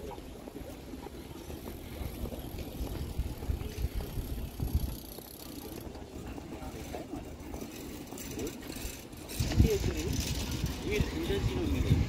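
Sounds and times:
city street low rumble: 0:00.0 - 0:12.0.

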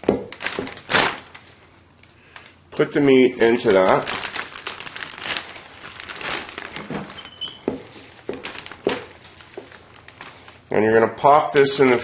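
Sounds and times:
plastic bag crinkling: 0:00.0 - 0:12.0.

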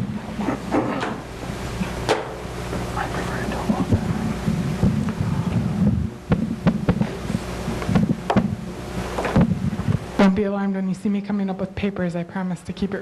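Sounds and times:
low rumble: 0:01.3 - 0:10.7.

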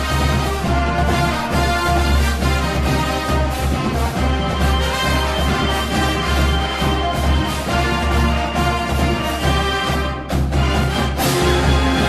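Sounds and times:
marching band music: 0:00.0 - 0:12.0.

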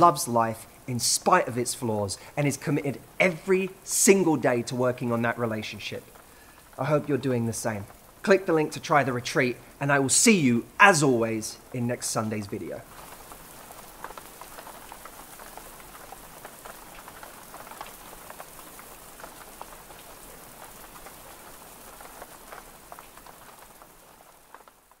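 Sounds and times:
rain falling on foliage: 0:00.0 - 0:25.0.

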